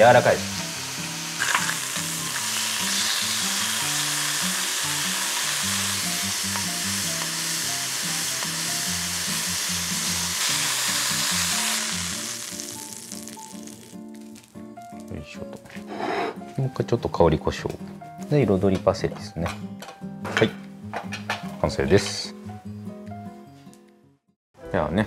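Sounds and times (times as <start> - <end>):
meat sizzling in a frying pan: 0.0 - 15.1
soft background music: 0.0 - 25.0.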